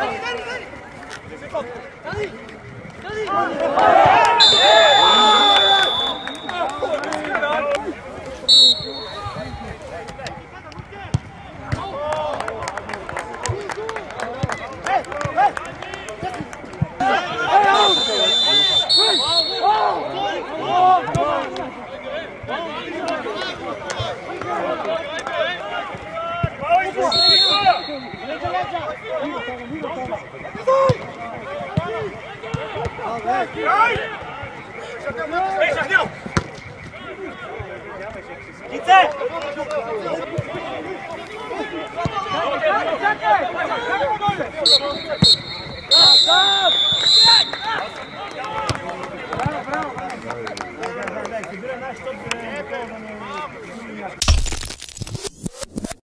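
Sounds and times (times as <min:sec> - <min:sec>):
players shouting: 0:00.0 - 0:54.2
referee's whistle blasts: 0:04.1 - 0:07.0, 0:08.4 - 0:09.9, 0:17.5 - 0:20.6, 0:26.5 - 0:29.4, 0:43.6 - 0:49.6.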